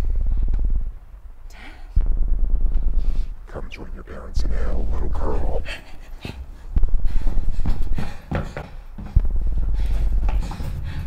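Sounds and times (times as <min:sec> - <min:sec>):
heavy low rumble: 0:00.0 - 0:08.2, 0:09.1 - 0:11.0
deep distorted demonic laugh: 0:05.0 - 0:06.5.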